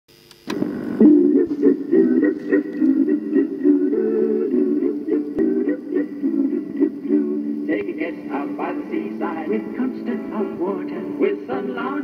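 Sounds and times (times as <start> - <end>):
click: 0.2 - 0.6.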